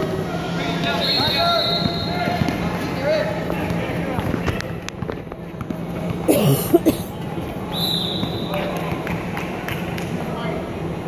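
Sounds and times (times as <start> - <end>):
voices in echoing gym: 0.0 - 11.0
ball bouncing on hard court: 1.8 - 2.7.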